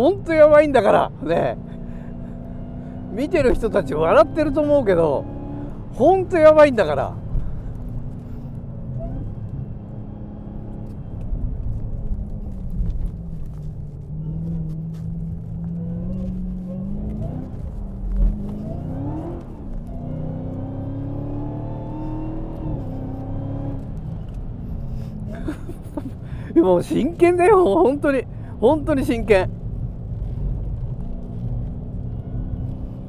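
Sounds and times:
car engine accelerating hard: 0.0s - 33.0s.

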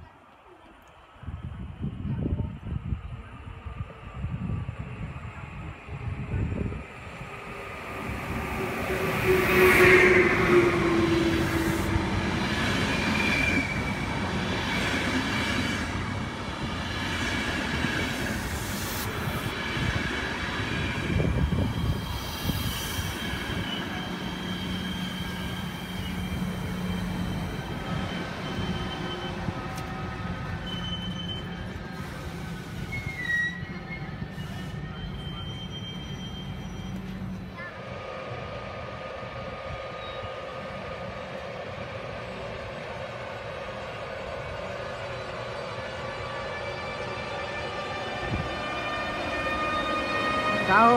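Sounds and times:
train coaches rolling on rails: 2.2s - 50.9s
high-pitched wheel squeal: 30.6s - 31.7s, 32.8s - 37.3s.

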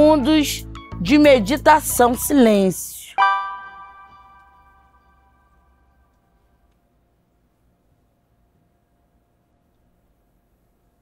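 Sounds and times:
meditation bell ringing: 3.2s - 6.1s.

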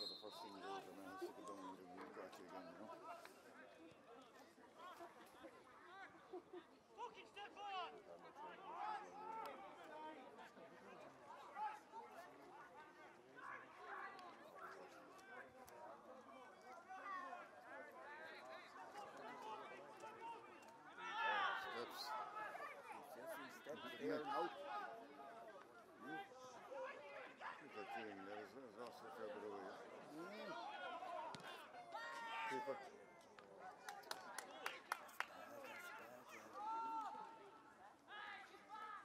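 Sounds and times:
distant shouting and chatter: 7.0s - 39.0s
loud shout: 20.9s - 23.0s, 30.3s - 33.0s, 35.6s - 37.5s.

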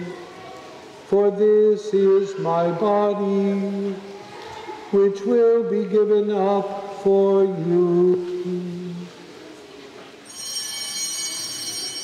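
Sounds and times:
small bells ringing: 10.3s - 12.0s.

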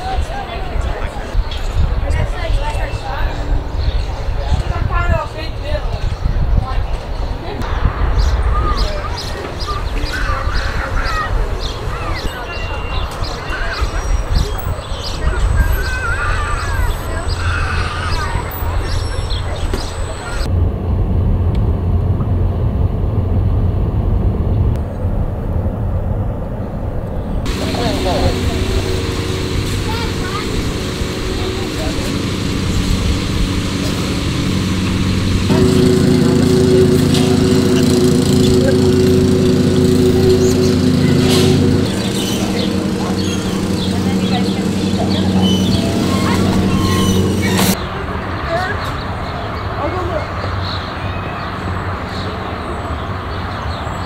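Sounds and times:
low steady rumble: 20.4s - 47.8s
high-pitched wavering voices: 27.5s - 47.8s
motor humming: 27.5s - 47.8s.

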